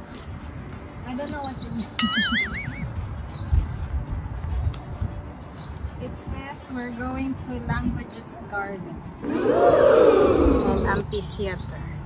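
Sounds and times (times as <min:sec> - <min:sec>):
woman laughing: 0:02.0 - 0:02.9.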